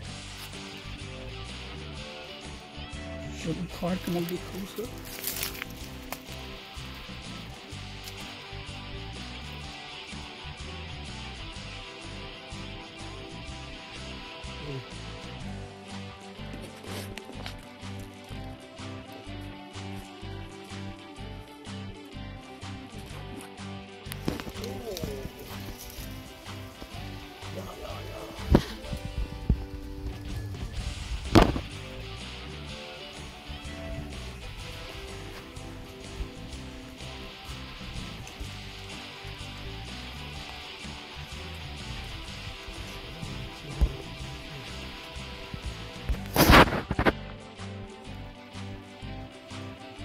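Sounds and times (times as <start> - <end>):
background music: 0.0 - 50.0.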